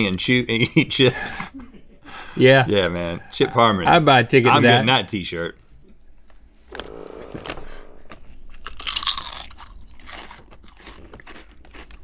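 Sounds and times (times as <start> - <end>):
potato chips crunching: 8.7 - 12.0
chewing: 8.8 - 12.0.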